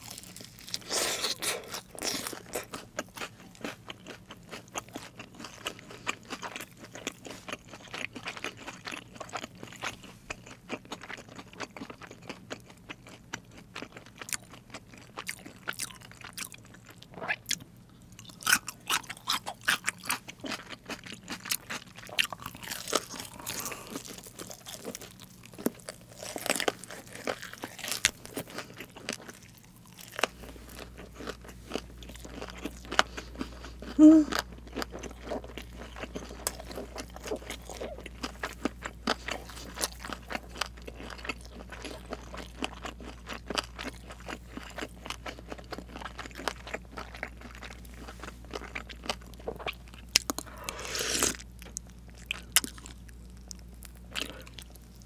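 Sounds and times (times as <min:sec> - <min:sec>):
person chewing crunchy fried chicken: 0:00.0 - 0:55.0.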